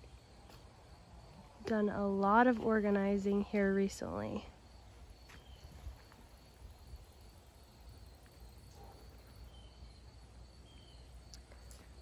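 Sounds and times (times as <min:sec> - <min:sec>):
insect chirr: 0:00.0 - 0:12.0.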